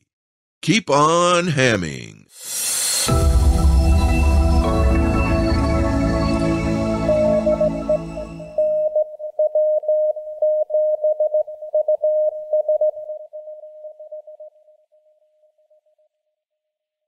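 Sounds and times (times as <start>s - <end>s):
morse code tone: 6.3s - 14.4s.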